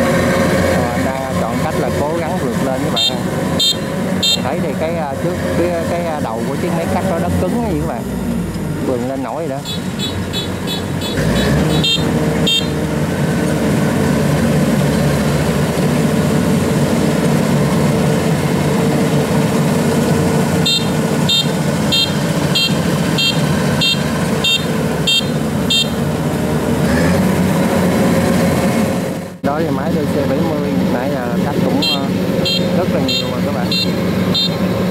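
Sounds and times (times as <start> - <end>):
diesel engine under load: 0.0 - 34.9
warning beeper: 1.4 - 8.2, 8.8 - 12.8, 20.6 - 26.0, 31.5 - 34.6.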